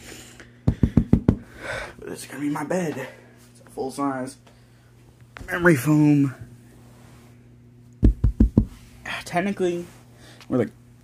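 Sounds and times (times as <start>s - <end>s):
hand patting mattress: 0.7s - 1.5s, 8.0s - 8.9s.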